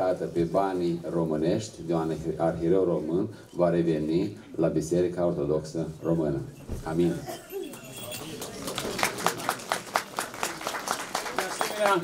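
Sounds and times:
audience applauding: 0:07.7 - 0:12.0.

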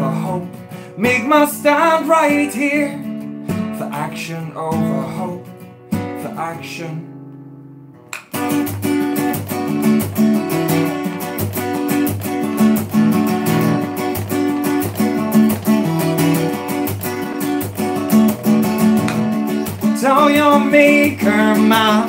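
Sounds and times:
acoustic guitar strumming chords: 0:00.0 - 0:22.0.

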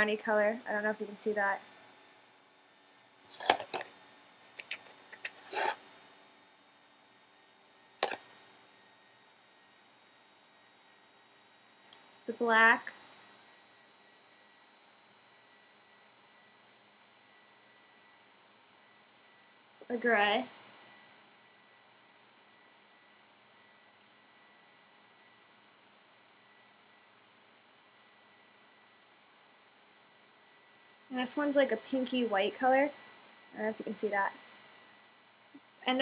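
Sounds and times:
eyeshadow palette clicks and scrapes: 0:04.6 - 0:05.8.

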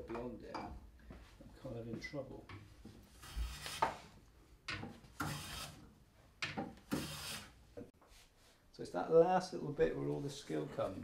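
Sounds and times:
hand plane scraping wood: 0:03.1 - 0:04.0, 0:05.2 - 0:05.8, 0:06.9 - 0:07.5.

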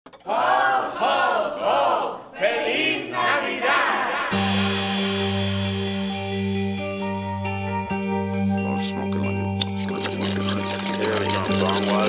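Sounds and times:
group of voices singing: 0:00.2 - 0:05.4.

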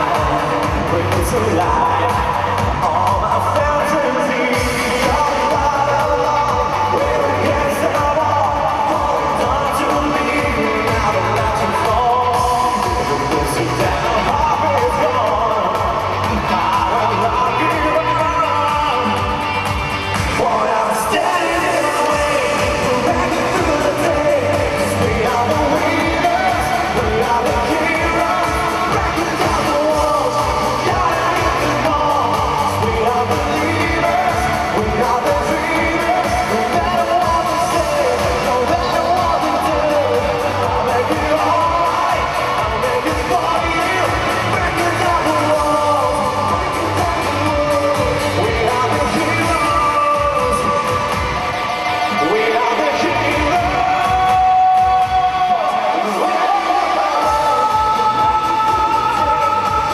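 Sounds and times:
pop-rock song: 0:00.0 - 0:59.9.

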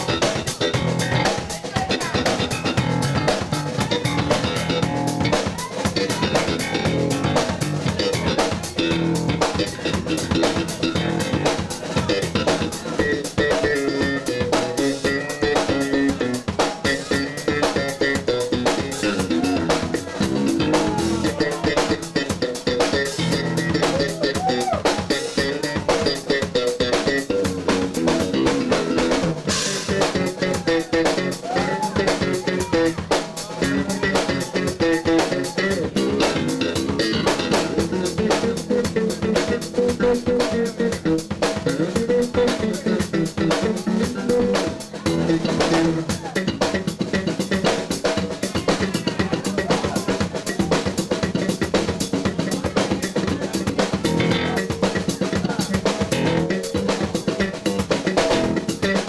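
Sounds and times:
drum kit beat: 0:00.0 - 0:59.0
electric bass: 0:00.0 - 0:59.0
sliding bending guitar notes: 0:00.0 - 0:59.0.

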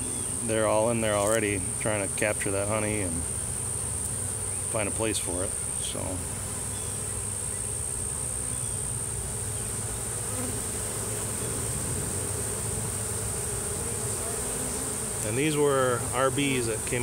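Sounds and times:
bee swarm humming: 0:00.0 - 0:17.0.

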